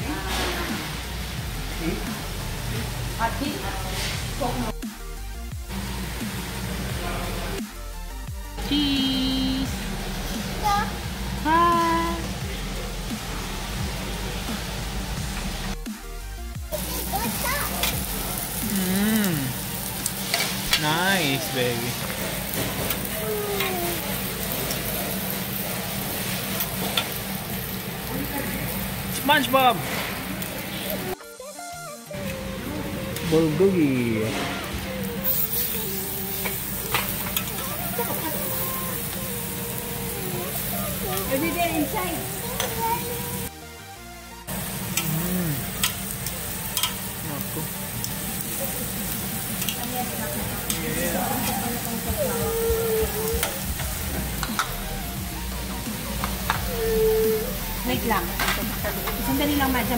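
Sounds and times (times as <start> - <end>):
meat sizzling on a grill: 0.0 - 43.8, 44.4 - 59.9.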